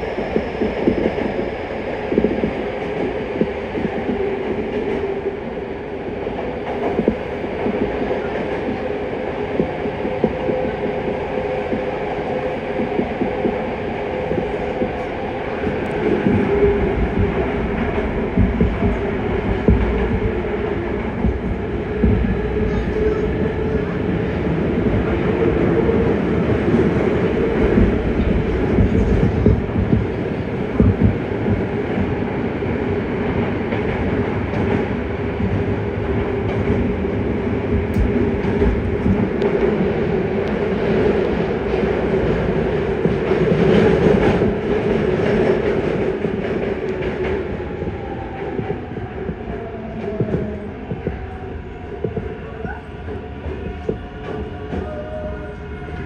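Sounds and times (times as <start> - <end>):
train wheels rumbling on rail: 0.0 - 56.0
train thumps: 14.2 - 23.6, 24.7 - 32.2, 48.4 - 55.0.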